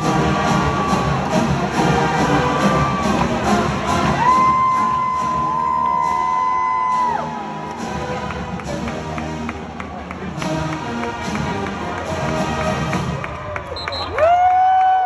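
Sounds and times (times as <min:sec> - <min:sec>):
marching band playing: 0:00.0 - 0:13.4.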